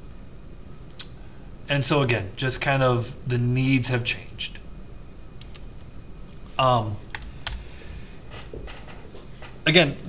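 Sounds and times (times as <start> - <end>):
computer keyboard keystrokes: 5.4 - 5.7, 7.1 - 7.6.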